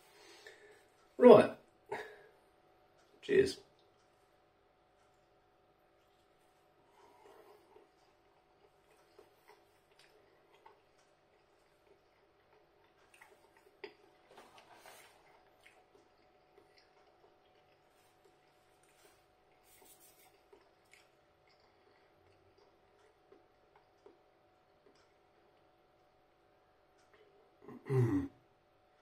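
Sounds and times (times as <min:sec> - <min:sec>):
person chewing pizza: 0:04.9 - 0:26.2.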